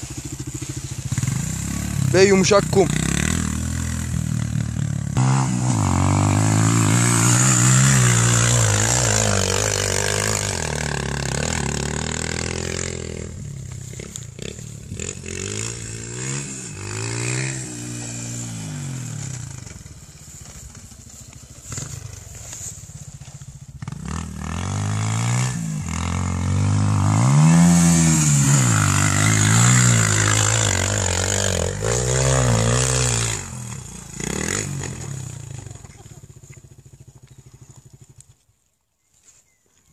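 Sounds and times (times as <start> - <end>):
dirt bike engine revving: 0.0 - 38.3.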